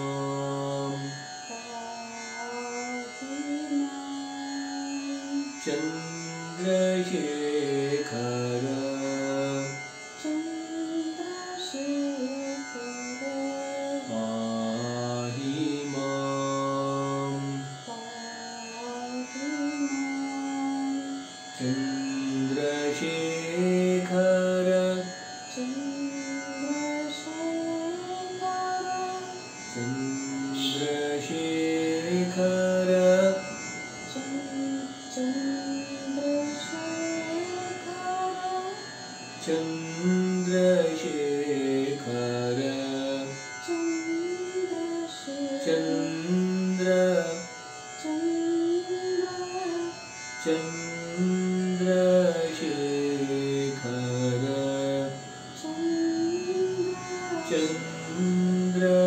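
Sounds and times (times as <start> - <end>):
slow devotional singing: 0.0 - 49.8, 50.4 - 59.0
steady drone: 0.0 - 59.0.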